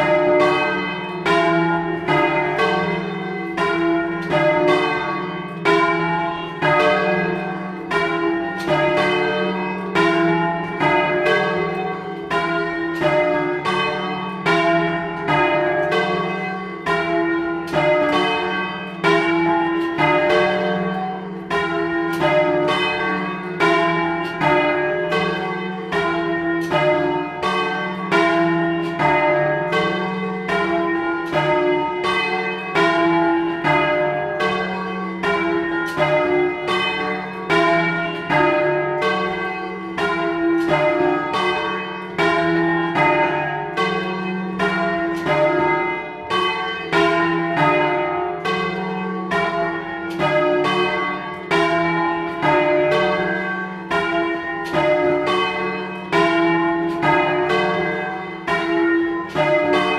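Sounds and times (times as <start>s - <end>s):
swinging church bells ringing: 0.0s - 59.9s.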